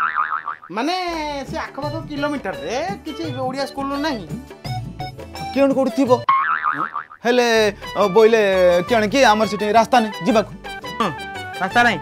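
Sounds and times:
cartoon boing: 0.0s - 0.7s, 6.3s - 7.2s
background music: 1.0s - 6.3s, 7.3s - 12.0s.

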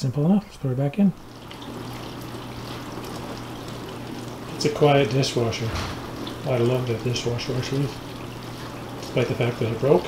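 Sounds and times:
dishwasher water sloshing and spraying: 1.2s - 10.0s
low motor hum: 1.2s - 10.0s.

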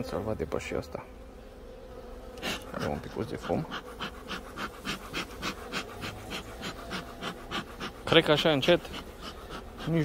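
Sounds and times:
bee smoker bellows puffing: 1.4s - 10.0s.

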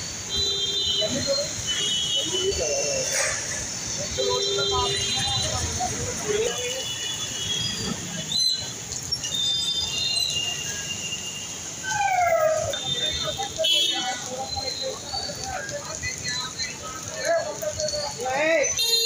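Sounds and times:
traffic: 0.0s - 19.0s
people talking: 0.4s - 8.6s, 12.0s - 19.0s.

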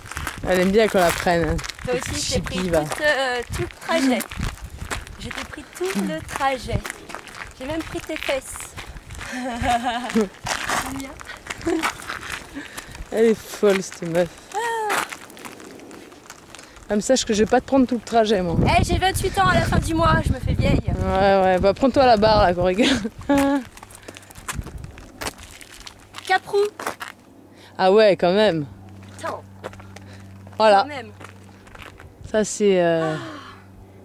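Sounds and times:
woman exclaiming: 1.9s - 4.2s, 5.2s - 6.9s, 14.5s - 15.1s, 32.9s - 33.6s
woman making playful vocal sounds: 5.8s - 6.3s, 9.3s - 12.0s, 14.5s - 15.1s, 33.0s - 33.6s.

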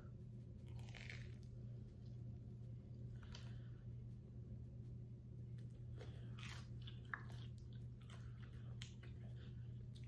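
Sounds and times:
crisp crust crunches: 0.6s - 1.5s
chewing food: 0.6s - 2.2s, 5.4s - 10.0s.

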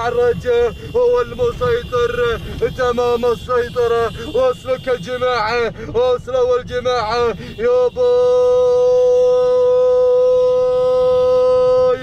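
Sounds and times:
commentator shouting: 0.0s - 12.0s.

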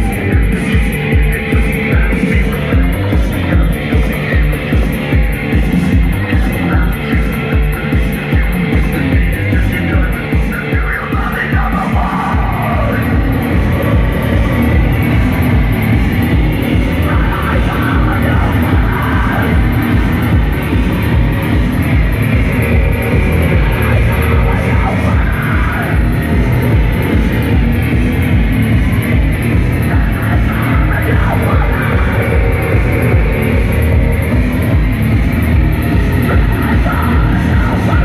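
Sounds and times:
distorted electric guitar: 0.0s - 38.0s
keyboards: 0.0s - 38.0s
pounding drum beat: 0.0s - 38.0s.

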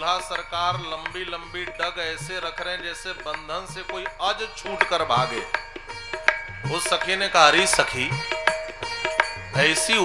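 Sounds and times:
man singing: 0.0s - 5.6s, 6.7s - 8.2s, 9.6s - 10.0s
hand percussion strikes: 0.0s - 10.0s
sustained steady accompaniment: 0.0s - 10.0s.

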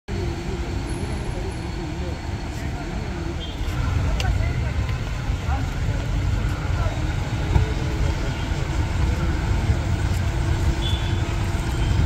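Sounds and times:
car engine rumbling: 0.1s - 12.0s.

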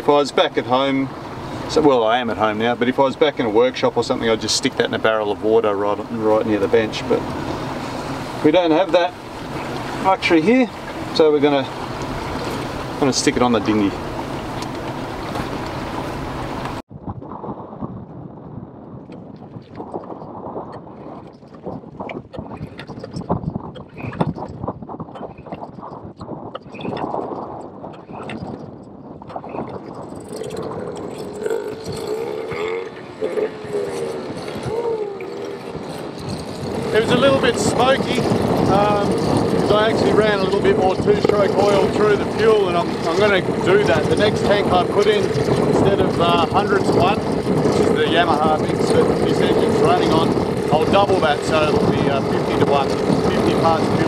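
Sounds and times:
outboard motor running: 0.0s - 16.8s, 19.8s - 54.0s.

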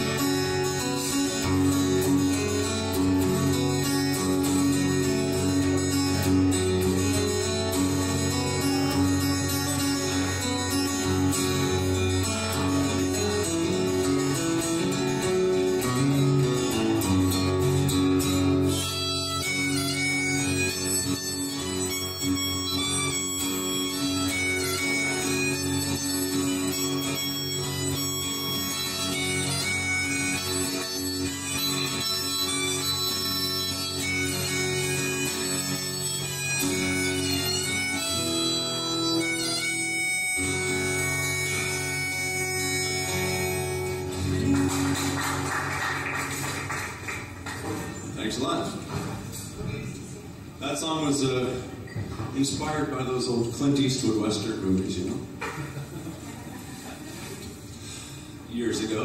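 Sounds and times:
harmonica playing held notes: 0.0s - 44.6s
strummed acoustic guitar: 0.0s - 49.7s.

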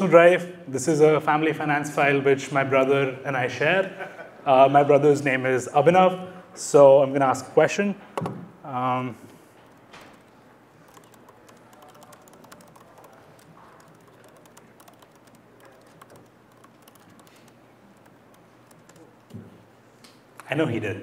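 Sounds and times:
laptop keystroke clicks: 10.9s - 19.4s.

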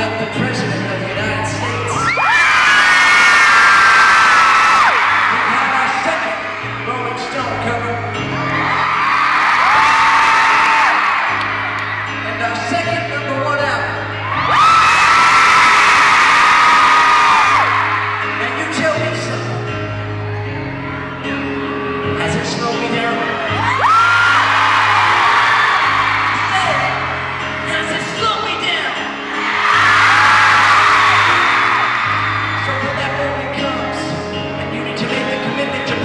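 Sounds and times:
grand piano playing slowly: 0.0s - 36.0s
crowd screaming and whooping: 1.3s - 13.0s, 13.9s - 34.2s.

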